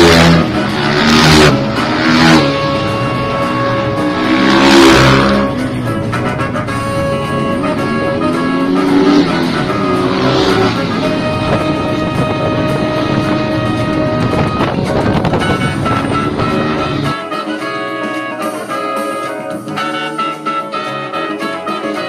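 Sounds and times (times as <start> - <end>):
motorcycle engines revving and passing: 0.0 - 17.2
music playing: 0.0 - 22.0.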